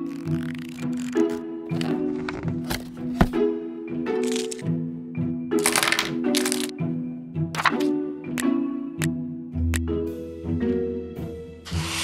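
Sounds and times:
plastic packaging crackling: 0:00.0 - 0:02.9, 0:05.6 - 0:06.7
light background music: 0:00.0 - 0:12.0.

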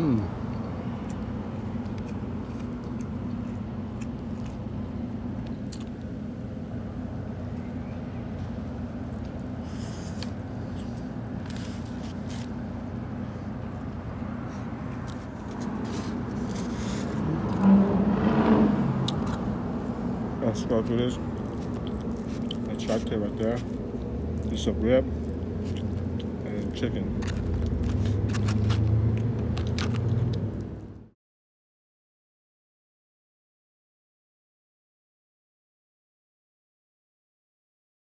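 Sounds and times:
road traffic hum: 0:00.0 - 0:31.2
vehicle passing: 0:13.8 - 0:31.0.

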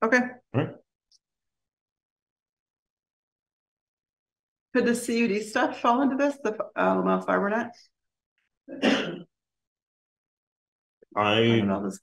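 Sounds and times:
person clearing throat: 0:08.7 - 0:09.2.

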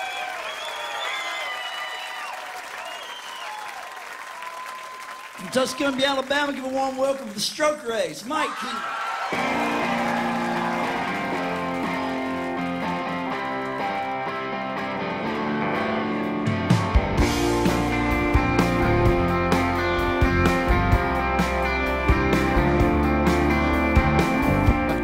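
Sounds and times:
bass guitar: 0:09.4 - 0:25.0
electric guitar chords: 0:09.4 - 0:25.0
drum kit: 0:16.4 - 0:25.0.

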